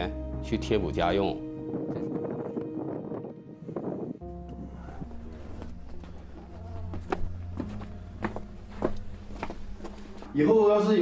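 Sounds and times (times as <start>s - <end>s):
soft background music: 0.0s - 11.0s
wind buffeting microphone: 1.6s - 4.2s.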